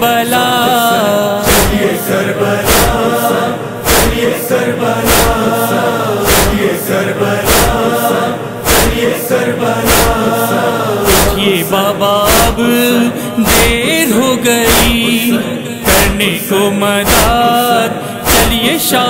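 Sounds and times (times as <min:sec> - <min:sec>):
voices chanting together: 0:00.0 - 0:19.0
percussive beat: 0:00.6 - 0:02.0, 0:02.6 - 0:04.4, 0:05.0 - 0:05.6, 0:06.2 - 0:06.8, 0:07.4 - 0:09.2, 0:09.8 - 0:10.4, 0:11.0 - 0:11.6, 0:12.2 - 0:12.8, 0:13.4 - 0:16.4, 0:17.0 - 0:17.7, 0:18.3 - 0:18.9.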